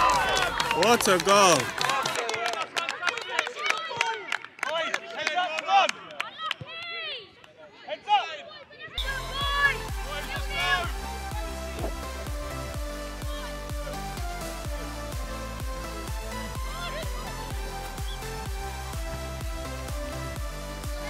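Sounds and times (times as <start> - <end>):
young players shouting: 3.0 - 11.9, 13.1 - 14.0, 16.6 - 17.4
music with heavy bass beat: 9.0 - 21.0.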